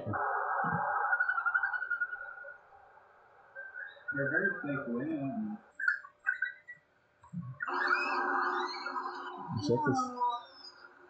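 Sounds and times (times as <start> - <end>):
red panda squeaks: 5.8 - 6.8.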